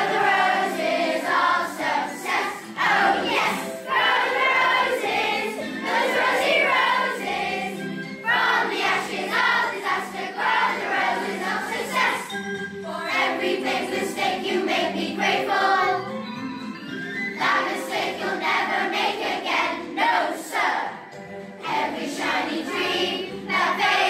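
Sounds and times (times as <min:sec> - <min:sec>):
children's choir singing: 0:00.0 - 0:16.4, 0:17.1 - 0:24.0.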